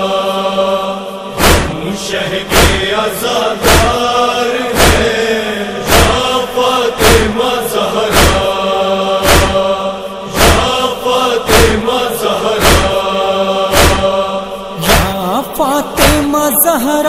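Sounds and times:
male chorus chanting: 0:00.0 - 0:17.0
heavy even thumping beat: 0:01.4 - 0:01.9, 0:02.5 - 0:02.9, 0:03.6 - 0:04.0, 0:04.7 - 0:05.2, 0:05.8 - 0:06.3, 0:08.1 - 0:08.6, 0:09.2 - 0:09.7, 0:10.3 - 0:10.8, 0:12.5 - 0:13.0, 0:13.7 - 0:14.2, 0:14.8 - 0:15.3, 0:16.0 - 0:16.4.

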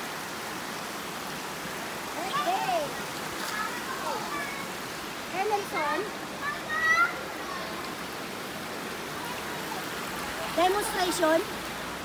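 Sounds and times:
river water running over rocks: 0:00.0 - 0:12.0.

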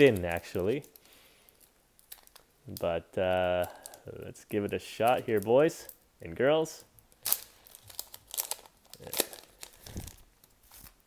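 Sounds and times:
wrapper crinkling and ticking: 0:00.0 - 0:06.1, 0:06.8 - 0:11.0.

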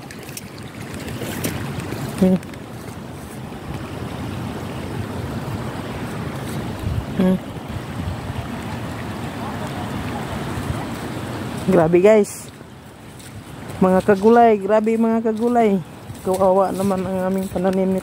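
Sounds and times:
floodwater flowing: 0:00.0 - 0:18.0
man humming: 0:07.2 - 0:07.5.

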